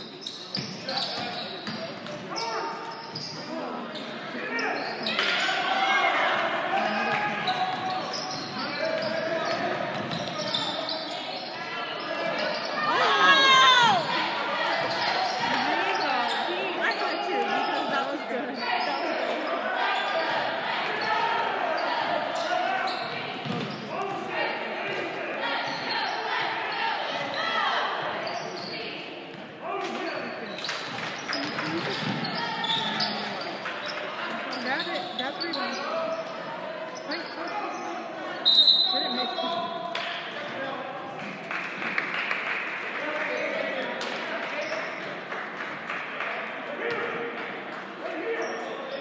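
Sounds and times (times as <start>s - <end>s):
echoing chatter and shouts: 0.0s - 49.0s
referee's whistle: 38.4s - 39.6s.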